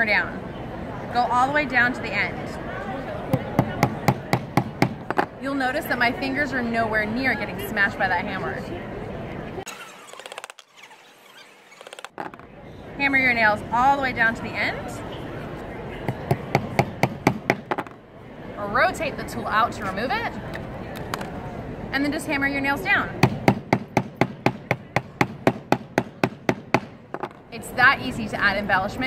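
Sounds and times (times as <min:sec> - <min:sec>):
hammer tapping nails: 0:03.4 - 0:05.3, 0:16.3 - 0:18.0.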